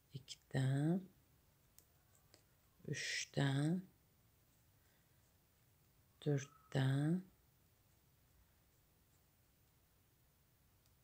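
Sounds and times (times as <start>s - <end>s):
person speaking: 0.0s - 1.2s, 2.8s - 3.9s, 6.2s - 7.4s.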